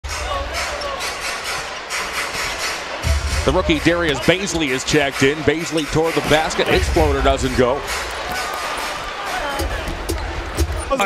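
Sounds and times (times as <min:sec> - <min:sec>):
arena crowd hum: 0:00.0 - 0:11.0.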